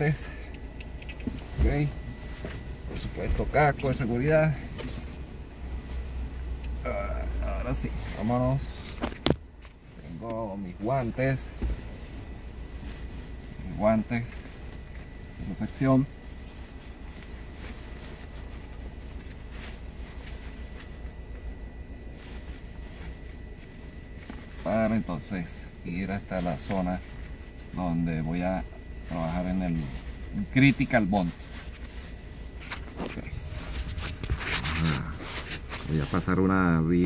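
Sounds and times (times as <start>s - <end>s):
faint rustles of movement: 0.0s - 37.0s
vehicle engine rumble: 0.0s - 37.0s
phone handling rustle: 31.3s - 35.9s.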